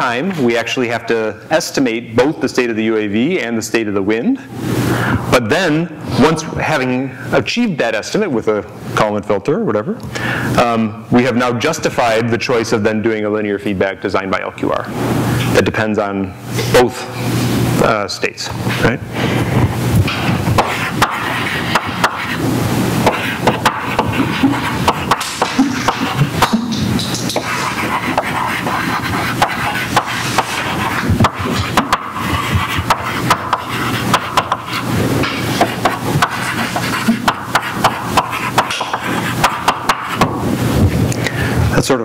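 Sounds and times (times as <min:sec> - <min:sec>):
chalk writing on a blackboard: 0:20.4 - 0:22.4, 0:23.0 - 0:40.4.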